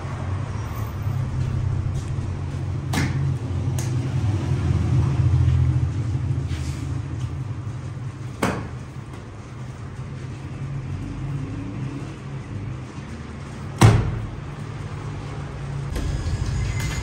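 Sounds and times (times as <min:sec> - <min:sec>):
low machine hum: 0:15.9 - 0:17.0.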